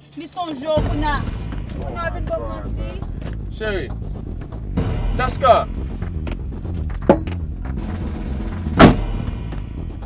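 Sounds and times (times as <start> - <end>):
background music with low beat: 0.8 - 10.0
car door slamming: 8.7 - 9.3.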